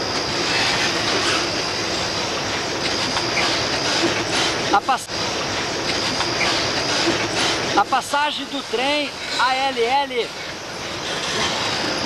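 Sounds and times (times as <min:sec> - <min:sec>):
freight train wheels on rails: 0:00.0 - 0:12.0.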